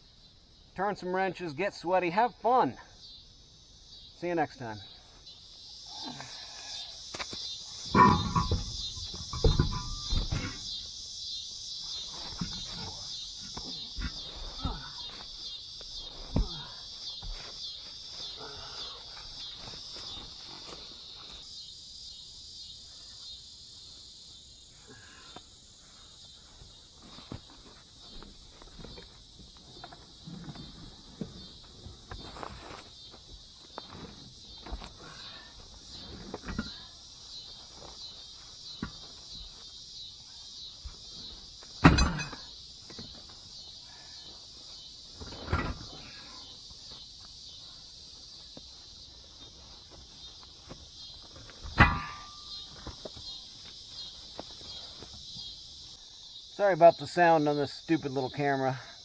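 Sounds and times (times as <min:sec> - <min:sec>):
high insect chorus: 0:00.0 - 0:59.0
loud thumps: 0:07.9 - 0:10.7.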